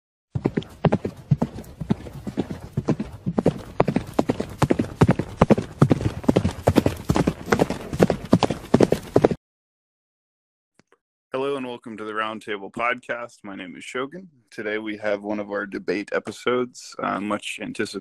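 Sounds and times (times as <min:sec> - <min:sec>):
horse hooves clopping on hard ground: 0:00.4 - 0:09.4.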